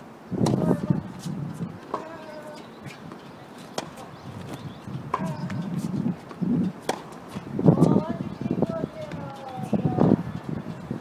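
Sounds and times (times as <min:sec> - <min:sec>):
tennis ball hit by rackets: 0:00.4 - 0:00.9, 0:01.8 - 0:08.0.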